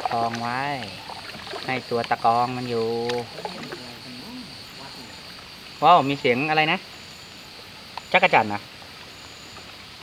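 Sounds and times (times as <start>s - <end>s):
high-pitched insect drone: 0.0s - 10.0s
man talking: 1.7s - 5.2s.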